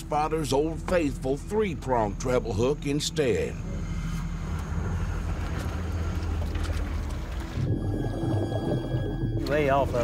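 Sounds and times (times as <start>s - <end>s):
dull underwater rumble: 0.0s - 10.0s.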